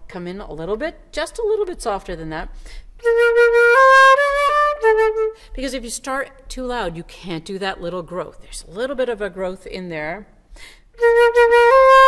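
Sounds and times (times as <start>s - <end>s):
flute playing: 3.0s - 5.5s, 11.0s - 12.0s.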